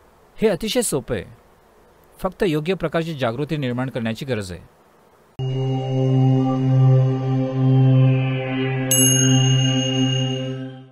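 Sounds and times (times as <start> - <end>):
deep chant-like drone: 5.4 - 10.9
bright chime ringing: 8.9 - 10.9.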